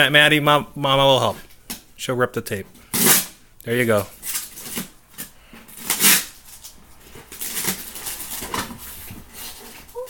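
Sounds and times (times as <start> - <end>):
packing tape ripping: 2.9 - 3.4, 4.1 - 10.0.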